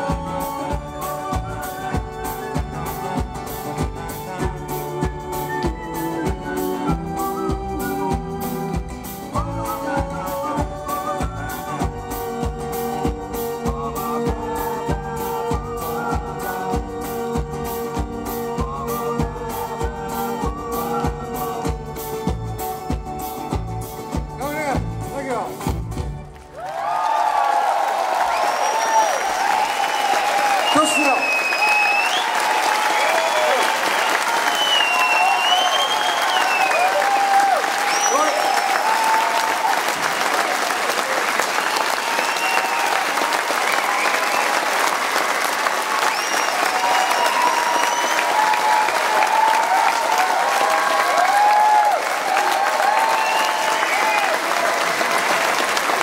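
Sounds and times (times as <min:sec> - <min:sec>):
audience applauding and cheering: 0:00.0 - 0:23.9, 0:26.2 - 0:56.0
band music: 0:00.0 - 0:26.6, 0:28.7 - 0:56.0
high gliding whistles: 0:33.5 - 0:36.8.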